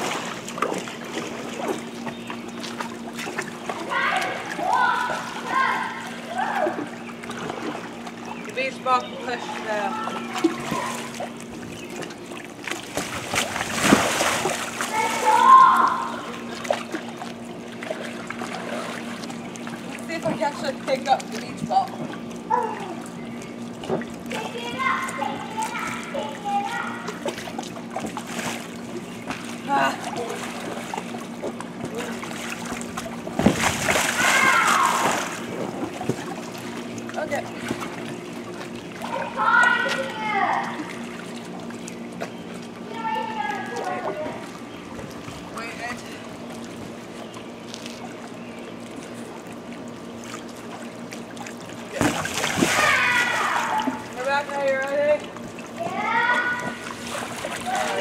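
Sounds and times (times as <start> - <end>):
steady low hum: 0.0 - 58.0
water splashing and sloshing: 0.0 - 58.0
child's voice: 3.9 - 6.8, 14.9 - 16.2, 24.3 - 27.2, 39.0 - 40.9, 42.9 - 44.4, 55.8 - 56.8.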